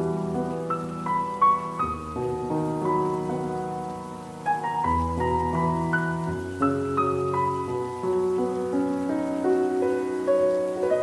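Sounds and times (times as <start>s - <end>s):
slow calm solo piano: 0.0s - 11.0s.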